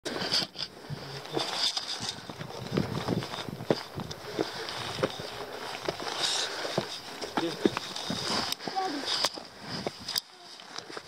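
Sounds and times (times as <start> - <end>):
boots and hands scraping rock: 0.1 - 11.0.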